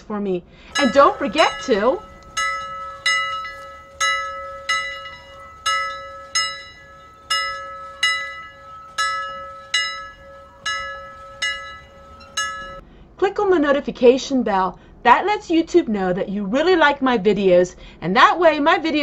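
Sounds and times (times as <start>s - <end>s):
bell strikes ringing: 0.7s - 12.8s
steady held tone: 0.7s - 12.8s.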